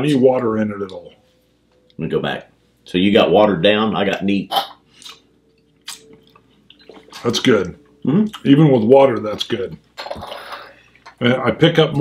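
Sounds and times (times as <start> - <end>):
wet lip smack: 5.8 - 6.1.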